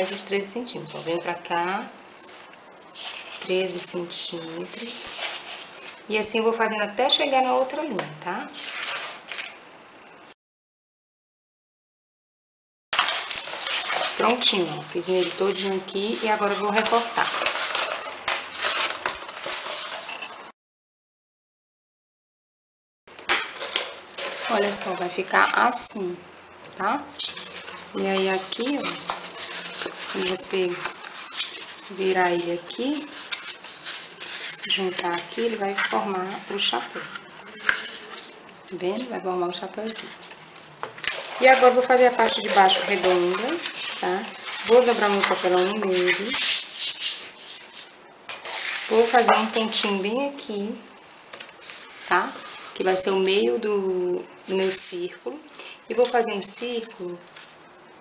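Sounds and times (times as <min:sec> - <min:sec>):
card stock rustling: 0:13.0 - 0:20.4, 0:27.2 - 0:39.2, 0:39.8 - 0:49.9.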